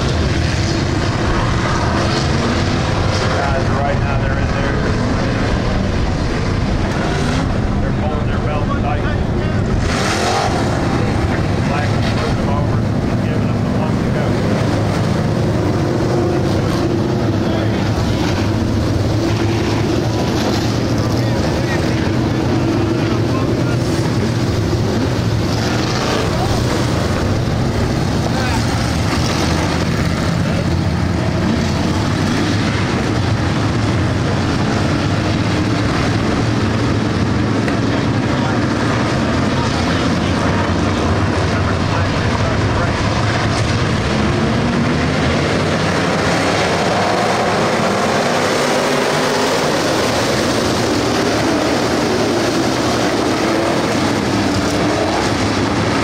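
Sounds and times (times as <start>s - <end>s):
stock car engines droning: 0.0s - 56.0s.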